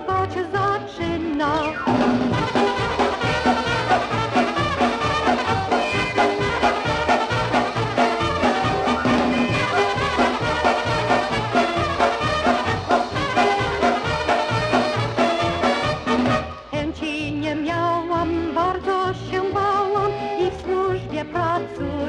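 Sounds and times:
polka band playing: 1.1s - 16.8s.

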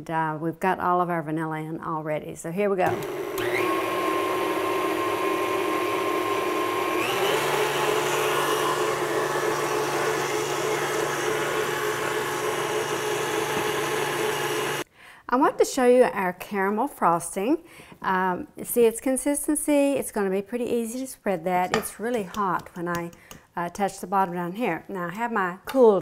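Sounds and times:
stand mixer motor whining: 2.9s - 14.8s.

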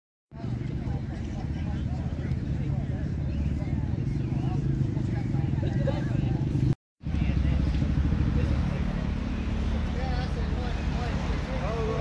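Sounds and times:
voices talking: 0.3s - 12.0s
motorcycle engine idling: 6.3s - 10.4s.

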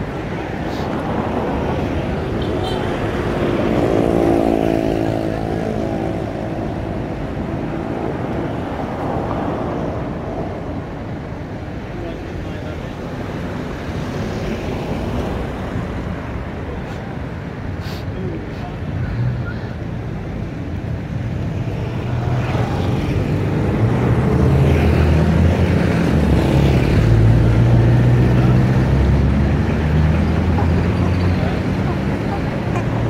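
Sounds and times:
street traffic noise: 0.0s - 33.0s.

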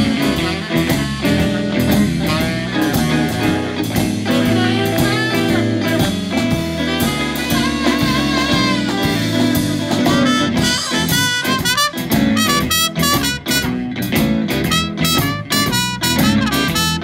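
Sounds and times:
live blues band playing: 0.0s - 17.0s
trumpet solo: 0.0s - 17.0s.

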